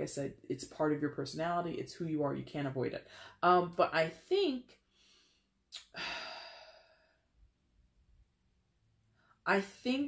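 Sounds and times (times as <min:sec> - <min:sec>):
woman sighing: 0:05.8 - 0:07.2.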